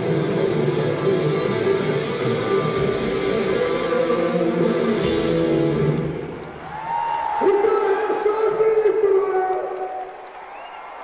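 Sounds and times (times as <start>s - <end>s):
crowd cheering and applause: 0.0s - 11.0s.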